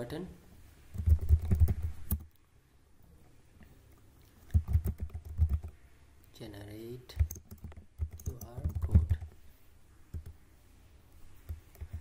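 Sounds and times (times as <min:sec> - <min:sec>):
typing on computer keyboard: 0:00.9 - 0:02.3, 0:04.5 - 0:05.8, 0:07.1 - 0:09.4, 0:10.1 - 0:10.4, 0:11.5 - 0:12.0.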